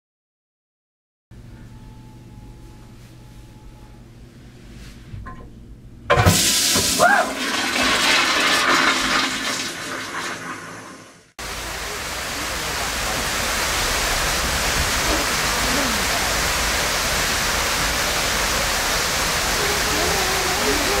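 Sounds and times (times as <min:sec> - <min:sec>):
toilet flushing: 0:06.1 - 0:21.0
steady rushing noise: 0:11.4 - 0:21.0.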